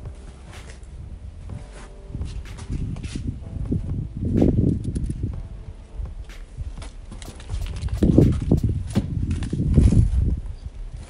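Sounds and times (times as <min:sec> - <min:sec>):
low knocks and rumbles: 0:00.0 - 0:09.4
footsteps and camera handling noise: 0:06.8 - 0:10.0.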